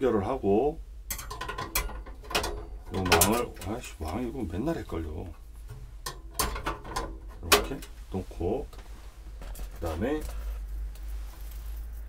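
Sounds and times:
metal pot grate clicking and rattling: 1.1 - 4.2, 5.7 - 7.9.

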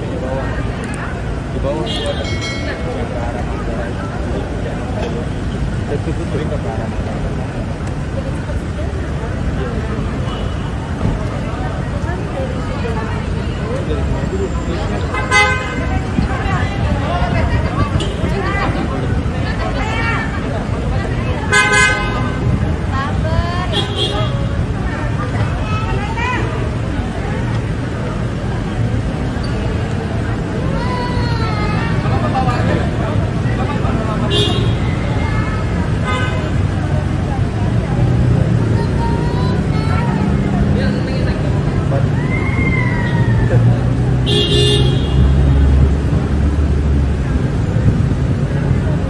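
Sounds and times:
babble of voices: 0.0 - 49.0
low traffic rumble: 0.0 - 49.0
people talking: 0.0 - 49.0
car horn toot: 15.1 - 15.9, 44.2 - 45.4.

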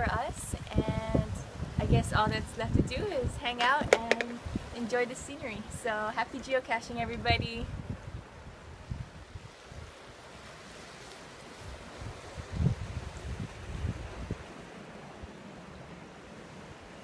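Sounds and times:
wind buffeting microphone: 0.0 - 6.0, 6.9 - 10.0, 11.6 - 15.4.

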